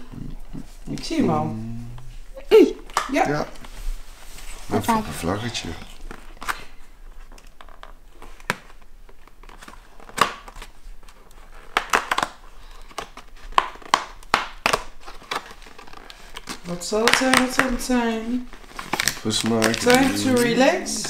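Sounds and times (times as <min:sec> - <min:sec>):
cardboard crinkling and cracking: 0:05.6 - 0:20.8.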